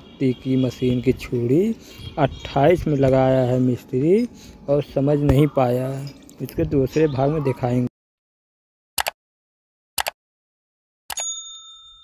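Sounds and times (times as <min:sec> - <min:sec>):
bright bell ding: 0:11.1 - 0:12.0.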